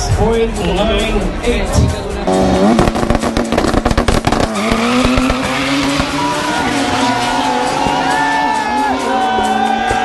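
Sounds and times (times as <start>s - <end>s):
drag car engine revving: 1.3s - 9.9s.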